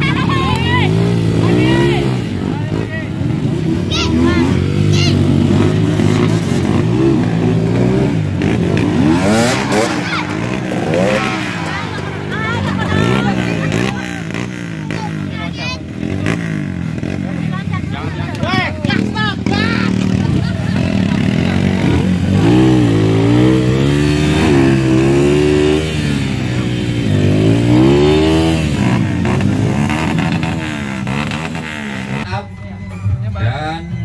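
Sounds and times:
dirt bike engines revving: 0:00.0 - 0:32.5
voices: 0:00.0 - 0:34.0.

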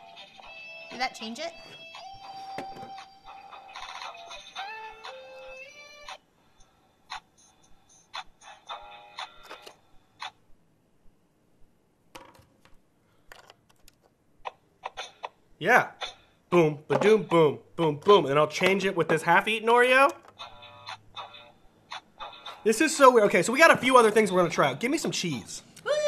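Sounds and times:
electronic toy melody: 0:00.0 - 0:06.2
clicks and taps: 0:12.1 - 0:15.4, 0:16.9 - 0:17.4, 0:18.0 - 0:19.3.

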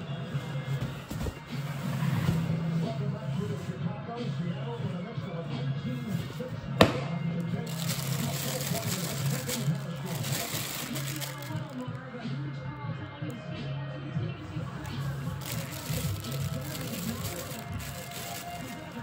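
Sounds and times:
background music: 0:00.0 - 0:19.0
cardboard box rustling: 0:00.7 - 0:01.5, 0:15.2 - 0:19.0
background talk: 0:02.8 - 0:19.0
sharp knock: 0:06.8 - 0:07.1
plastic wrap crinkling: 0:07.6 - 0:12.0, 0:14.8 - 0:19.0.

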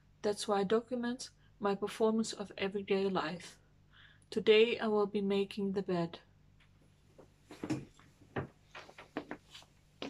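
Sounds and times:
knocks and rustles of person moving: 0:06.5 - 0:10.0.

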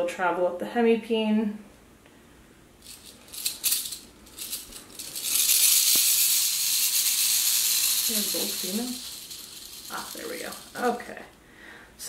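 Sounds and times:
rattlesnake rattling: 0:02.8 - 0:11.3.

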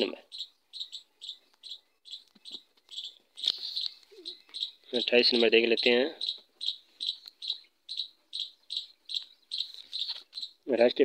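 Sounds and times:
small bird chirping: 0:00.0 - 0:11.0.

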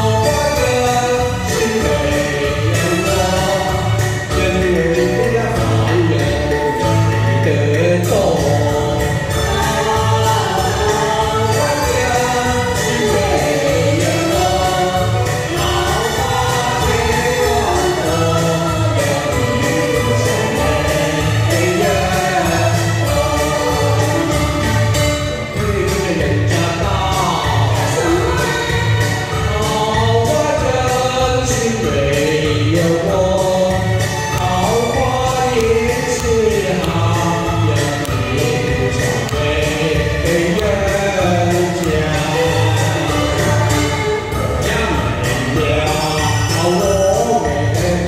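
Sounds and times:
amplified backing music: 0:00.0 - 0:48.0
vocal duet singing: 0:00.0 - 0:48.0.

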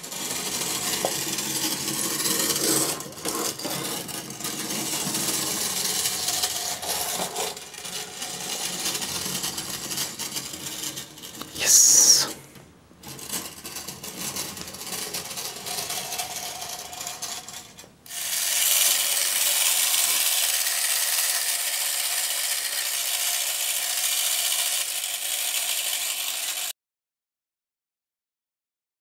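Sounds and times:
clockwork motor clicking and rattling: 0:00.0 - 0:12.3, 0:13.0 - 0:26.7
clockwork motor whirring: 0:04.4 - 0:12.3, 0:14.8 - 0:26.7.

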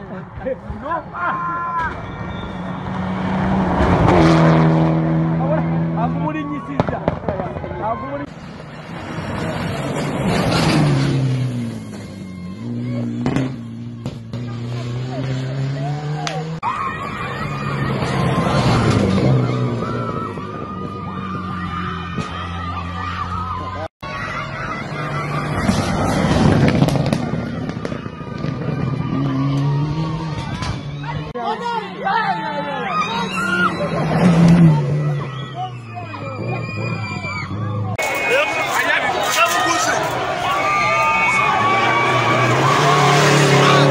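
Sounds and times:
rally car passing at speed: 0:01.9 - 0:22.0, 0:24.4 - 0:31.4, 0:32.3 - 0:43.9
rally car engine at high revs: 0:02.3 - 0:06.3, 0:12.5 - 0:16.6, 0:28.4 - 0:31.4, 0:33.1 - 0:35.6, 0:41.6 - 0:43.9
rush of gravel: 0:38.0 - 0:43.9.

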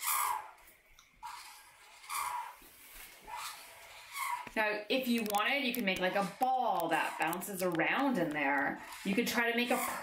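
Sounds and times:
marker drawing on paper: 0:00.0 - 0:00.6, 0:01.2 - 0:10.0.

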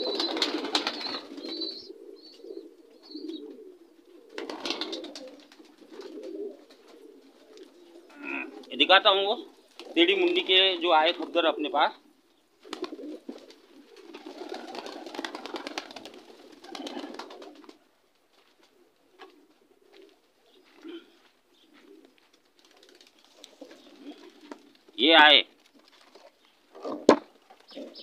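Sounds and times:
pigeons cooing: 0:00.0 - 0:10.5, 0:11.3 - 0:17.9, 0:18.6 - 0:25.1, 0:26.0 - 0:28.0.

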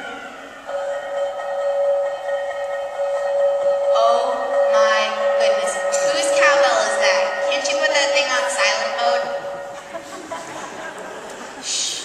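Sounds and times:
steady held tone: 0:00.0 - 0:11.3.

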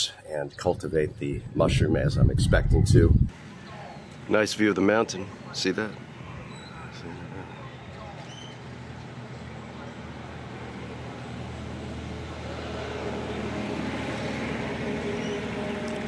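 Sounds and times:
vehicle engine humming: 0:00.8 - 0:16.0.

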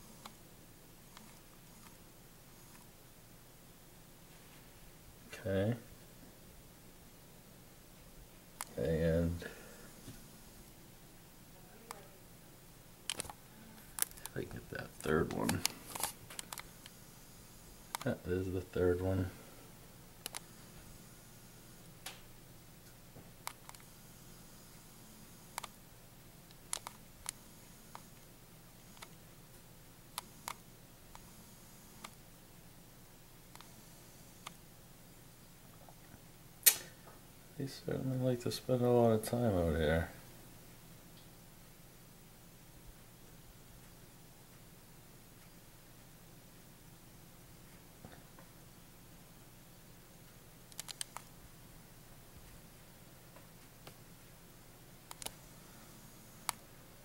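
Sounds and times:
faint low hum: 0:00.0 - 0:57.0
faint steady hiss: 0:00.0 - 0:57.0
sharp clicks: 0:13.1 - 0:13.4, 0:20.2 - 0:20.5, 0:25.5 - 0:25.8, 0:26.5 - 0:28.3, 0:36.6 - 0:36.9, 0:50.7 - 0:51.3, 0:55.1 - 0:55.4, 0:56.4 - 0:56.6.

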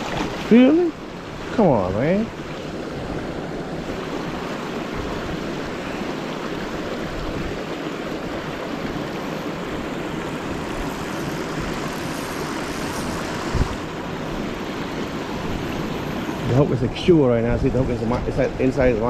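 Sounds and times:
fast river water rushing: 0:00.0 - 0:19.0
whitewater churning: 0:00.0 - 0:19.0.

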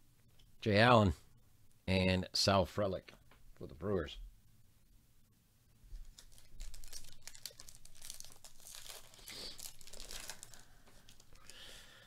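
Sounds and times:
foil wrapper tearing and crinkling: 0:06.1 - 0:11.6.

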